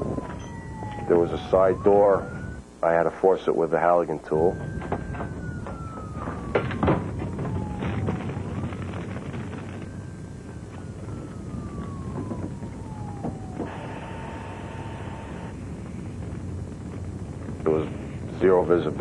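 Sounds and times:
fire engine siren: 0.0 - 19.0.

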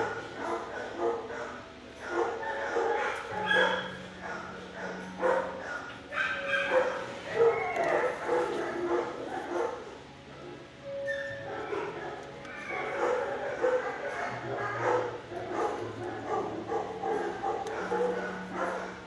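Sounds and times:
dogs barking and yipping: 0.0 - 19.0.

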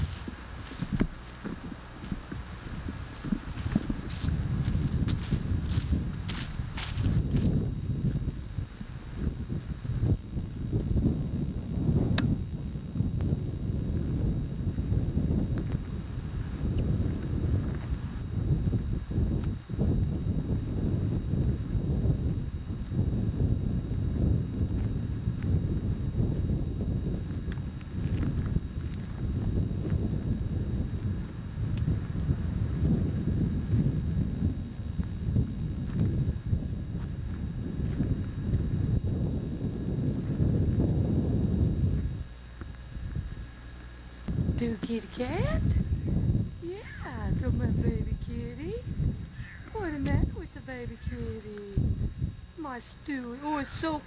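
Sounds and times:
wind buffeting microphone: 0.0 - 54.0
sharp clicks: 12.0 - 12.5.

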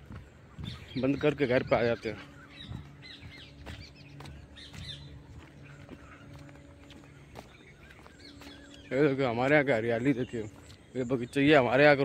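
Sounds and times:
distant birds chirping: 0.0 - 12.0
low steady hum: 0.0 - 12.0.

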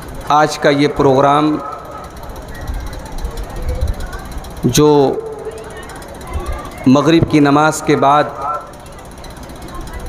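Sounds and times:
man speaking over public address: 0.2 - 2.1, 4.7 - 5.4, 6.8 - 8.8.

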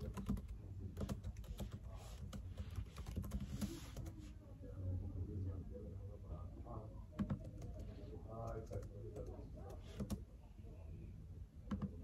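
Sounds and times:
typing on laptop keyboard: 0.0 - 4.1, 7.2 - 7.9, 10.0 - 10.2, 11.7 - 12.0.

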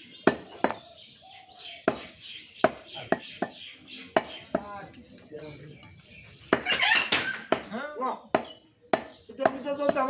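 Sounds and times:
knife chopping meat on wood: 6.5 - 10.0.

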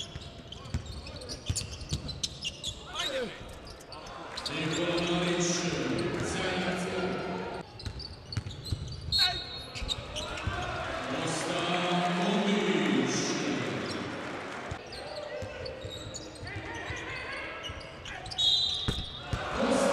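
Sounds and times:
sneaker squeaks: 0.0 - 6.4, 7.1 - 10.6, 14.7 - 19.3
crowd voices: 10.1 - 16.0, 19.2 - 19.9.

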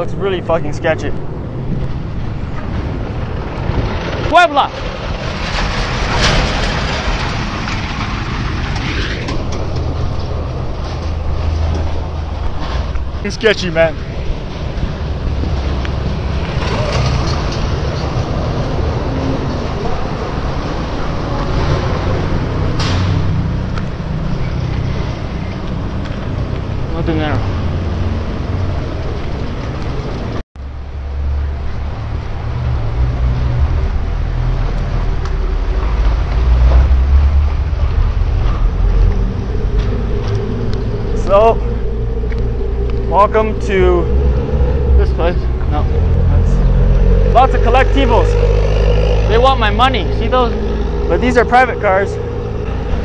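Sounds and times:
vehicles passing in underpass: 0.0 - 53.0.

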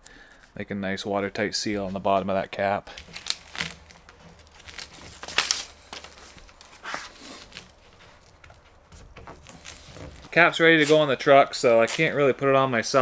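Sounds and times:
backing paper rustling: 1.7 - 13.0.

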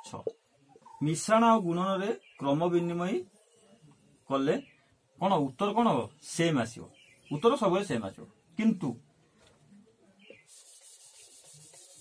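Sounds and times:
duster wiping a whiteboard: 10.4 - 12.0.

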